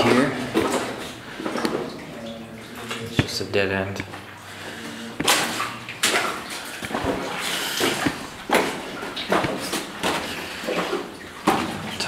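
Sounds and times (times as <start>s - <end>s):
boots splashing through shallow water: 0.0s - 12.0s.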